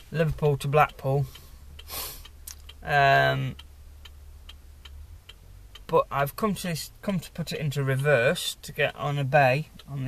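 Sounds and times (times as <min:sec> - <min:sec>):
hazard lights ticking: 0:00.0 - 0:10.0.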